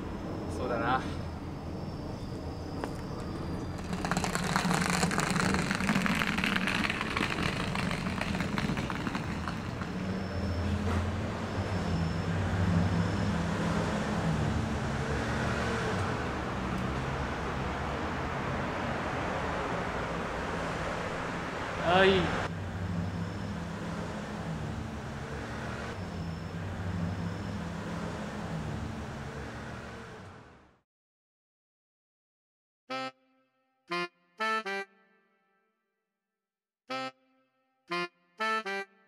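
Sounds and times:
road traffic rumble: 0:00.0 - 0:30.8
crackling noise: 0:02.8 - 0:10.6.

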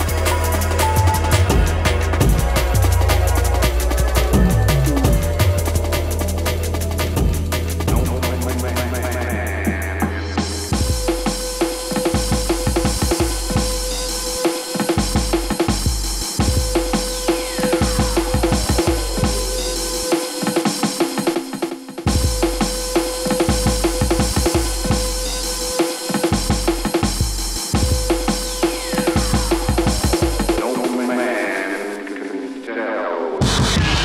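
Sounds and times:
deep bass: 0:00.0 - 0:14.4, 0:15.0 - 0:20.1, 0:22.1 - 0:30.6
drum beat: 0:00.0 - 0:31.3.

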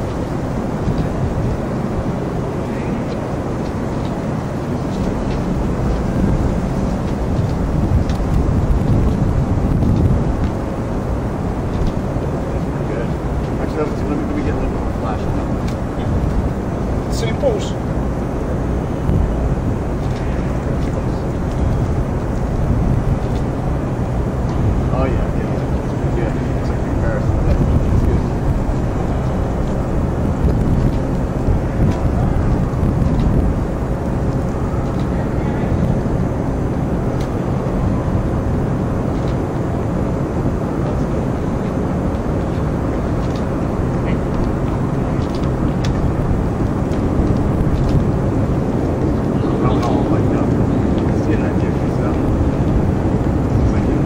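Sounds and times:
low outdoor rumble: 0:00.0 - 0:54.0
faint voices: 0:00.8 - 0:09.2, 0:10.6 - 0:54.0.

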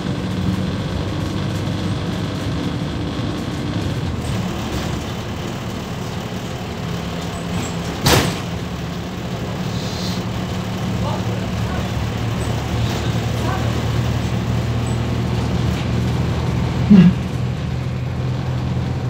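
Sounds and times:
bus diesel engine running: 0:00.0 - 0:19.0.

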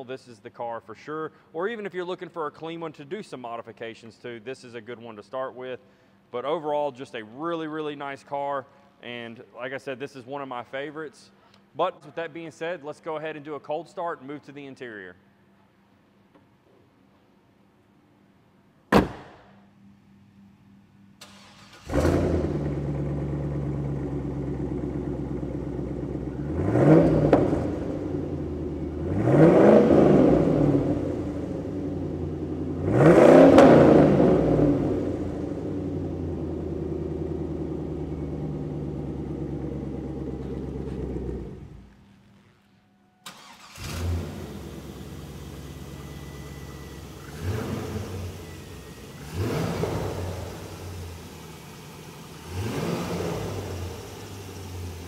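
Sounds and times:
car engine starting and revving: 0:21.2 - 0:41.9, 0:43.2 - 0:55.0.

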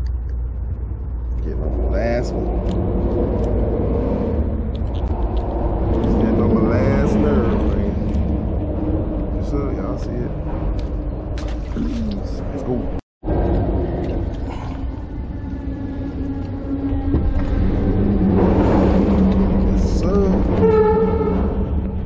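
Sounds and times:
traffic rumble: 0:00.0 - 0:22.0
indistinct voices: 0:01.1 - 0:22.0.

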